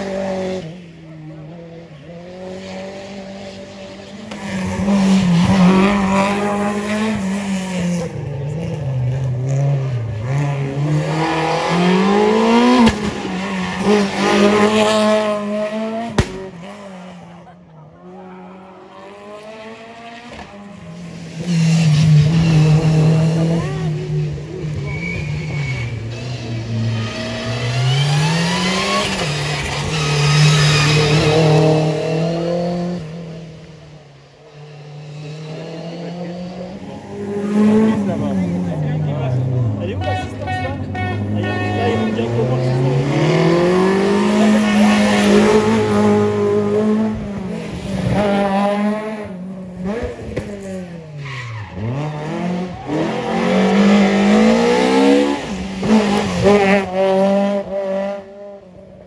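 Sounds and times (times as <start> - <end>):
rally car engines revving: 0.0 - 59.0.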